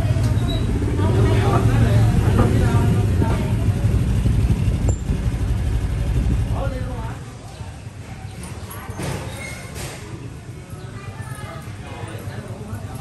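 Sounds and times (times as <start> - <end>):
people talking: 0.0 - 4.9, 5.5 - 13.0
motor scooter engine running: 0.0 - 7.1.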